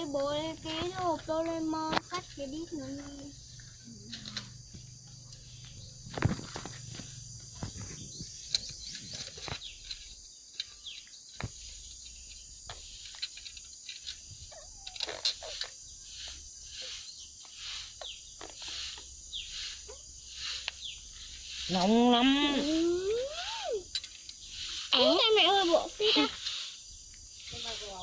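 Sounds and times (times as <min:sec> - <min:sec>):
insects chirring: 0:00.0 - 0:28.0
metal parts clicking and clinking: 0:08.5 - 0:15.8, 0:23.9 - 0:24.4.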